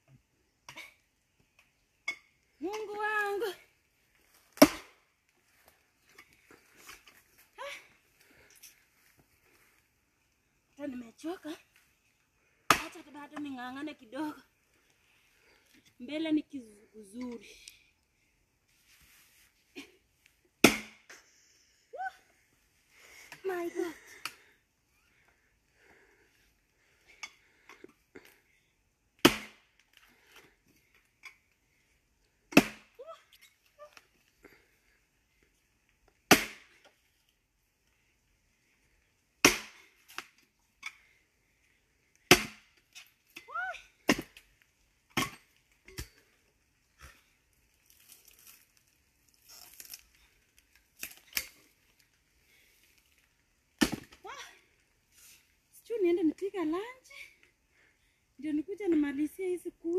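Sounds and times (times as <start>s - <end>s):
axe splitting log: 4.6s - 5.0s, 12.7s - 13.0s, 20.6s - 21.1s, 29.2s - 29.7s, 32.5s - 33.0s, 36.3s - 37.0s, 39.4s - 40.3s, 42.2s - 43.1s, 44.0s - 44.5s, 45.1s - 46.2s, 53.8s - 54.2s.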